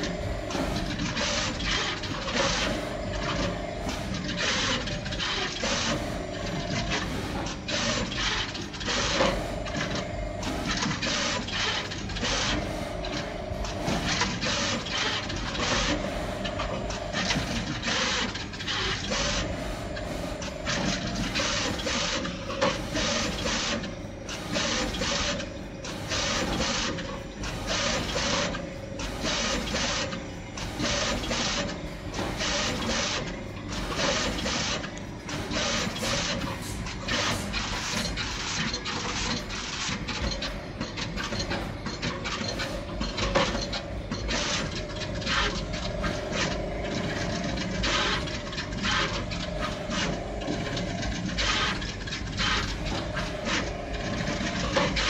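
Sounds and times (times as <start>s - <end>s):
machine mechanical clatter and hiss: 0.0s - 55.0s
machine whine: 0.0s - 55.0s.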